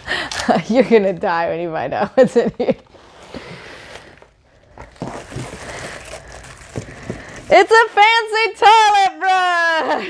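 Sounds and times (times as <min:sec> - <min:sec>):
plastic bag crinkling: 0:04.0 - 0:07.5.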